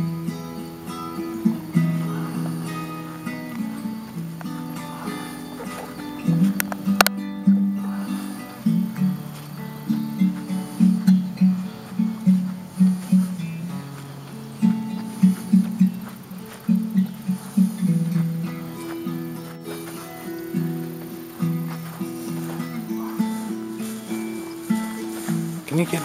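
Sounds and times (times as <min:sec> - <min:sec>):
acoustic guitar melody: 0:00.0 - 0:26.0.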